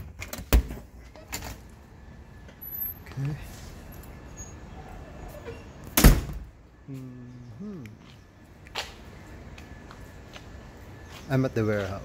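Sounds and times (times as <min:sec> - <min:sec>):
door slamming shut: 0:05.9 - 0:06.5.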